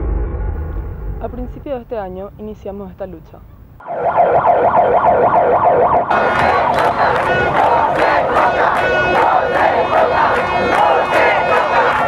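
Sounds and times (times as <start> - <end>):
siren-like wail: 3.8 - 12.0
crowd shouting and chanting: 6.1 - 12.0.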